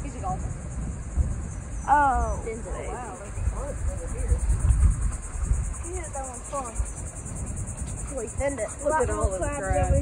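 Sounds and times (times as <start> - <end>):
high-pitched insect chorus: 0.0 - 10.0
low uneven rumble: 0.0 - 10.0.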